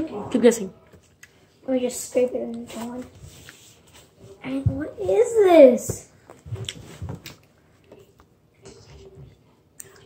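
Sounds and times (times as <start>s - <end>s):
soft squishing of shaving cream: 6.0s - 10.0s.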